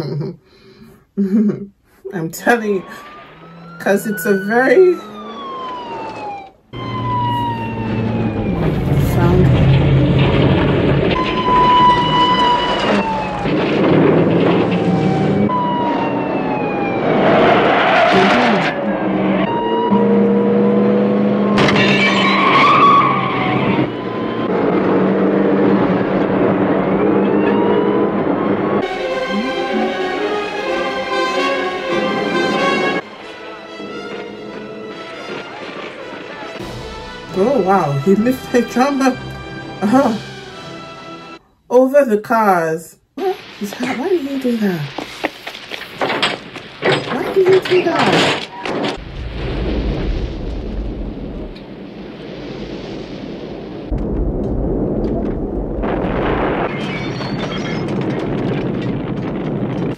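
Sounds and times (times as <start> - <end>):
tyres skidding: 2.6 - 41.4, 44.8 - 50.1
siren sliding in pitch: 2.8 - 10.4, 11.0 - 37.4
vehicle engines running: 2.8 - 40.1
background music: 28.8 - 41.4.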